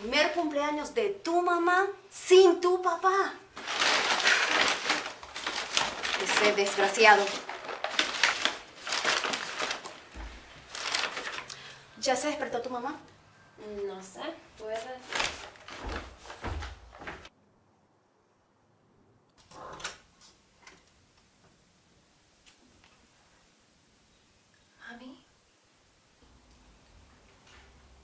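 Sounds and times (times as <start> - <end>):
wrapping material rustling: 3.5 - 11.8, 14.6 - 17.3.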